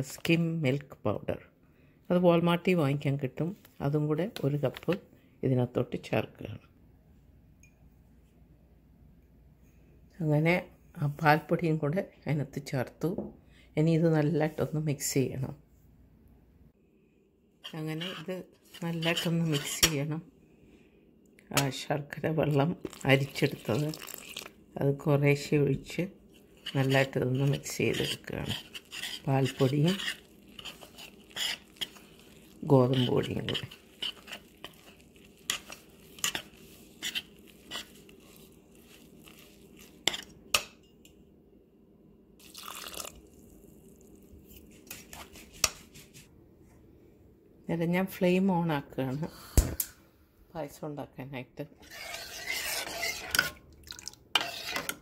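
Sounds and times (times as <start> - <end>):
spoon stirring dry powder in pot: 17.6 - 20.2, 21.5 - 24.6, 25.3 - 41.2, 51.8 - 53.6, 54.3 - 55.0
person speaking: 17.7 - 20.2, 21.5 - 24.1, 24.8 - 30.8, 32.5 - 34.4.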